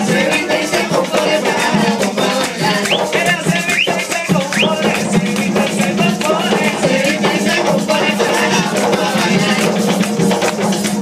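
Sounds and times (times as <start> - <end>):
barrel drums playing a rhythm: 0.0 - 11.0
maraca shaking: 0.0 - 11.0
rising voice calls: 2.2 - 5.1.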